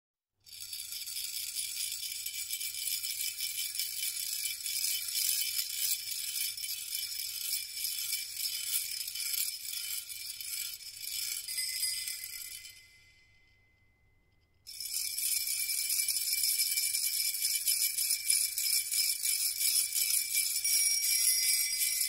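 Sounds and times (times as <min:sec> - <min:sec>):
shaken metal jingles: 0:07.7 - 0:13.4, 0:15.0 - 0:22.0.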